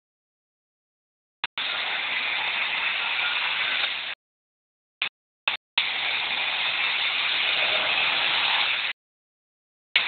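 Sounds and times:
distorted engine hiss: 1.5s - 4.2s, 5.8s - 9.0s.

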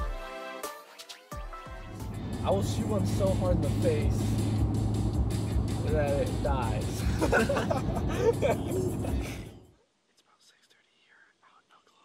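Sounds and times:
man whispering: 9.3s - 12.0s.

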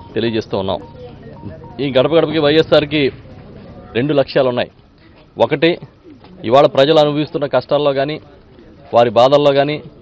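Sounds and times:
man speaking: 0.0s - 3.2s.

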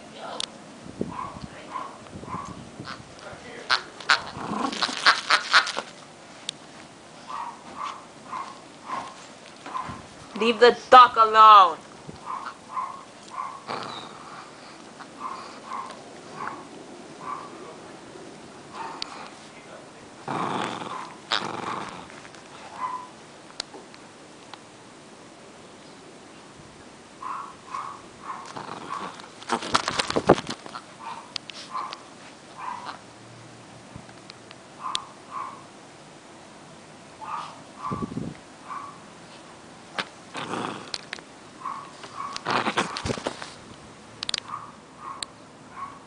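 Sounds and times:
dog play-growling: 1.1s - 6.1s, 7.2s - 10.3s, 12.2s - 23.2s, 27.2s - 33.1s, 37.2s - 43.6s
dog shaking toy clicks and rustling: 4.0s - 6.0s, 29.2s - 30.8s.

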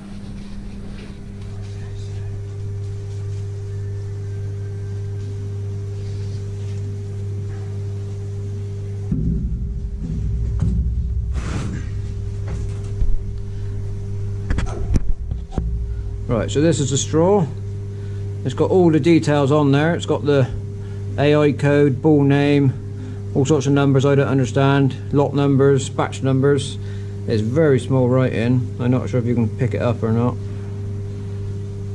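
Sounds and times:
electrical hum: 0.0s - 31.9s
sharp knocks: 9.1s - 13.2s.

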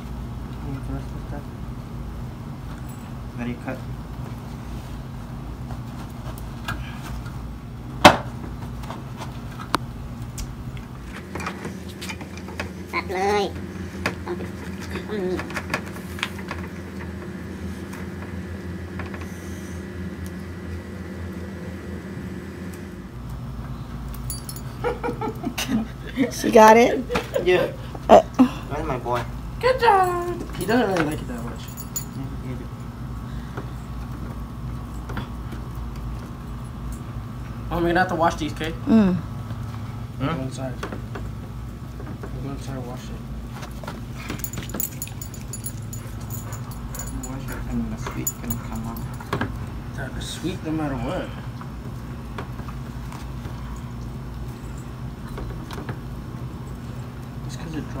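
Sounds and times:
steady low hum: 0.0s - 58.0s.

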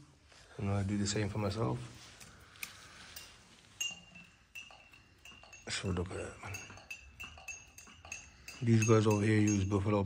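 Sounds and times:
faint ringing: 2.3s - 10.0s
china cups clinking: 2.9s - 10.0s.

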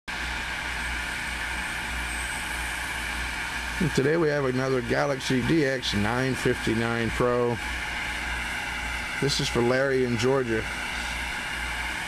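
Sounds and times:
low hum: 0.1s - 12.0s
radio static hiss: 2.8s - 12.0s.

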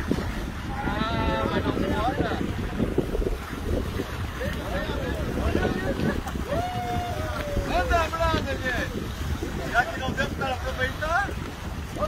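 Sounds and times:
wind buffeting microphone: 0.0s - 12.0s
faint voices: 0.5s - 12.0s.

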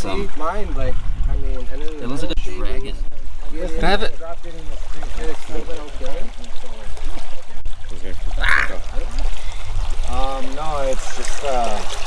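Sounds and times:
river water rushing: 4.5s - 12.0s
people talking: 10.1s - 11.9s.

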